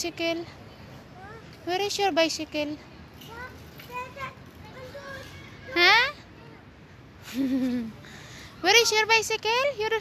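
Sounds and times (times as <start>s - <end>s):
child's high-pitched calls: 3.3s - 6.6s.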